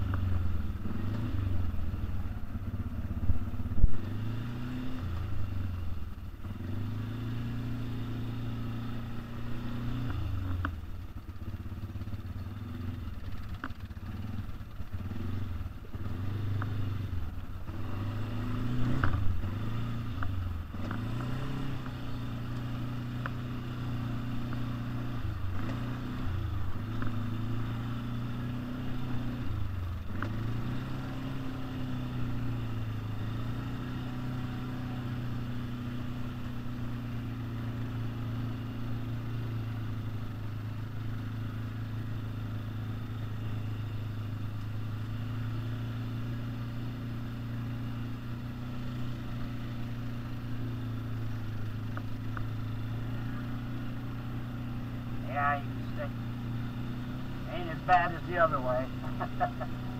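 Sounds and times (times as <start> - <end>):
atv engine running: 0.0 - 59.9.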